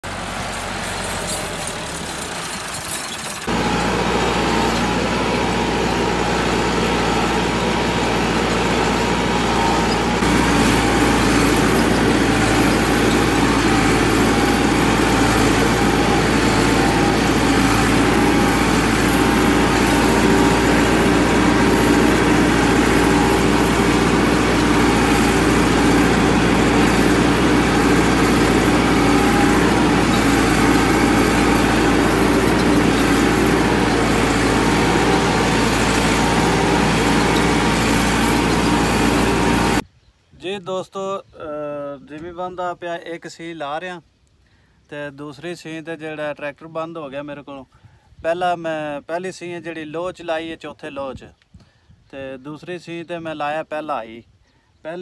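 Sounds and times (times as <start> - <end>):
tractor diesel engine running: 0.0 - 39.9.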